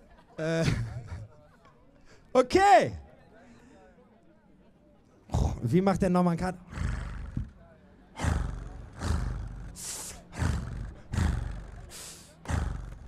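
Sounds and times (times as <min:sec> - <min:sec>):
beatboxing into a microphone: 0:08.2 - 0:13.0.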